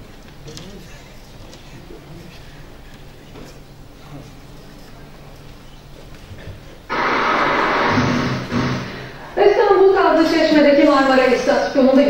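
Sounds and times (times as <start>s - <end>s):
loud rush of tv noise over speakers: 0.0s - 12.0s.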